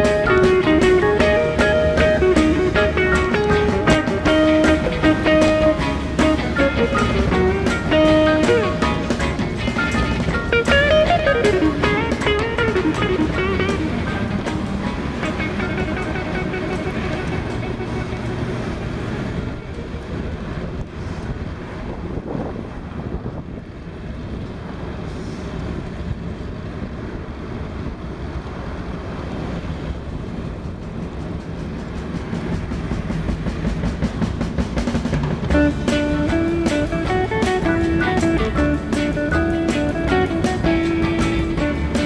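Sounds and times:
music playing: 0.0s - 19.6s, 32.2s - 42.0s
bicycle road rumble: 0.0s - 42.0s
wind on microphone: 0.0s - 42.0s.

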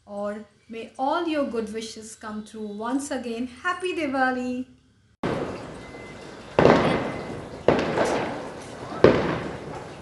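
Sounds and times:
firecrackers banging: 5.2s - 10.0s.

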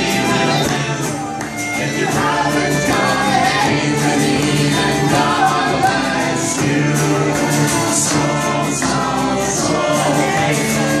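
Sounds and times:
woman singing lead: 0.0s - 6.8s
acoustic guitar: 0.0s - 11.0s
fiddle: 0.0s - 11.0s
voices singing along: 0.0s - 11.0s.

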